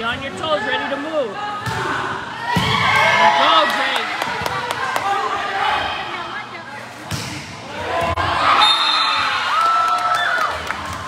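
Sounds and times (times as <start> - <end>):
high whistle: 8.6 - 9.4.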